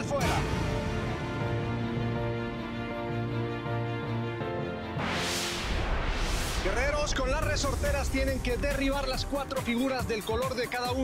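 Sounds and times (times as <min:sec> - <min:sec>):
bass-heavy music: 0:00.0 - 0:11.0
rushing transition whoosh: 0:05.0 - 0:09.0.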